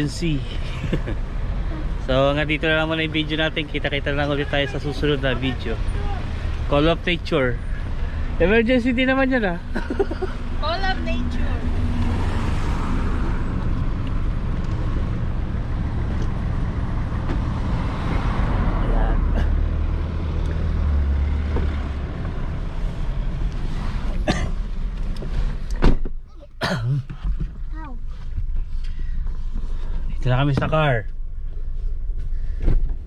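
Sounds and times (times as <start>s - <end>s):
road traffic rumble: 0.0s - 33.0s
car door shutting: 25.2s - 26.2s.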